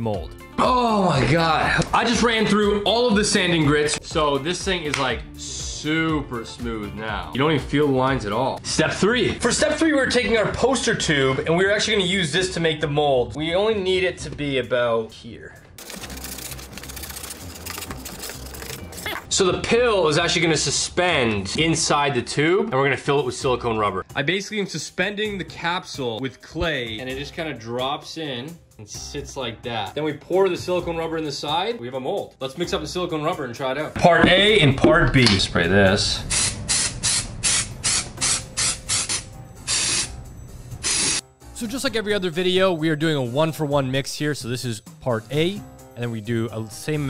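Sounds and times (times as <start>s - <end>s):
aerosol spray hissing bursts: 36.2s - 40.2s, 40.8s - 41.2s.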